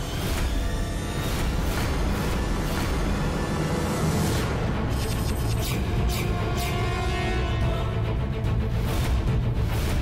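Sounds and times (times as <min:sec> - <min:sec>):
suspenseful background score: 0:00.0 - 0:10.0.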